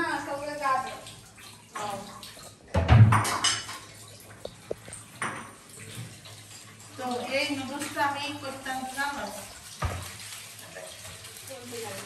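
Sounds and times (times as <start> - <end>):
water running at sink: 0.0 - 12.0
dishes clattering: 2.7 - 6.2.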